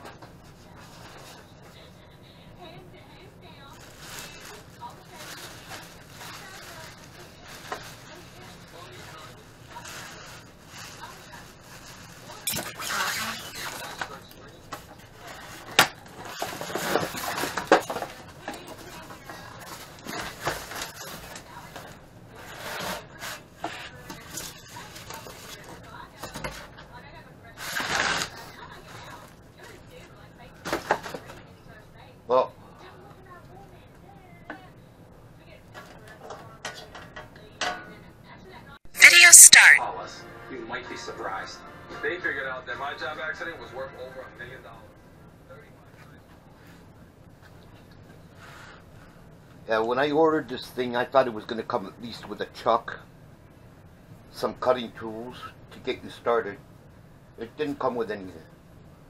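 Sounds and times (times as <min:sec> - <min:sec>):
plastic sheeting and foam rustling: 0:03.7 - 0:13.6.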